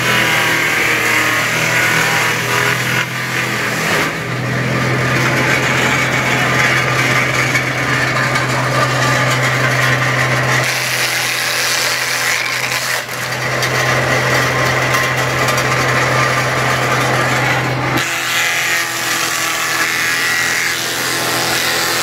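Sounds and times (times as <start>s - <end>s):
wood shredder grinding wood: 0.0s - 22.0s.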